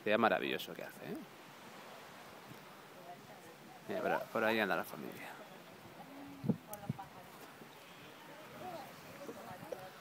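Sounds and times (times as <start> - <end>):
faint voices: 1.0 - 10.0.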